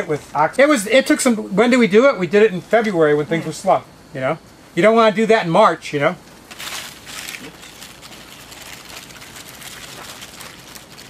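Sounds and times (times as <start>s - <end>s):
soil rustling scratch: 6.5s - 11.0s.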